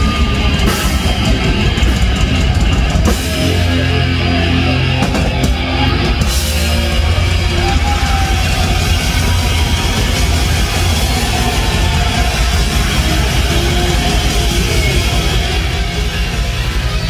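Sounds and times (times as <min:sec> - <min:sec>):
distorted electric guitar: 0:00.0 - 0:17.0
drum kit: 0:00.0 - 0:17.0.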